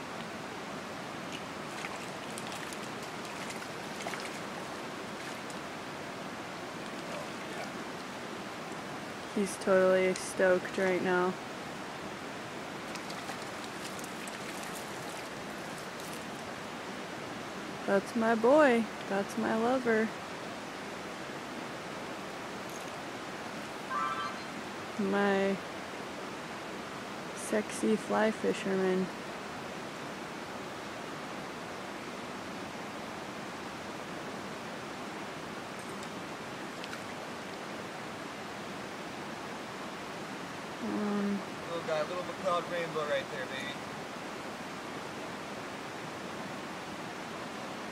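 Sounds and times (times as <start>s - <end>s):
river water rushing: 0.0s - 40.8s, 41.4s - 47.9s.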